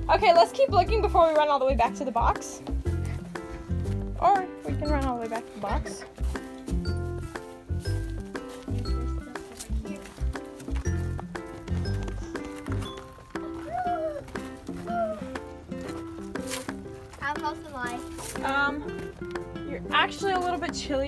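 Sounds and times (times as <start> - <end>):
low beat: 0.0 - 21.0
music with held notes: 0.0 - 21.0.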